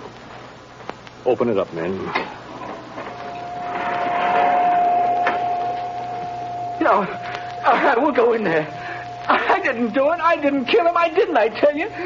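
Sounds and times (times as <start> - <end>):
steady high hum: 0.0 - 12.0.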